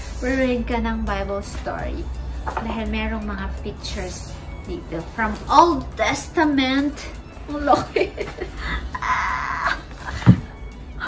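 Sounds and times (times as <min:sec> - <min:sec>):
woman squealing playfully: 0:08.9 - 0:10.1.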